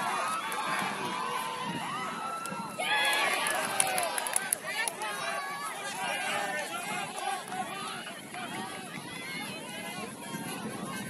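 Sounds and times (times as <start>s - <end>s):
people shouting: 0.0s - 9.5s.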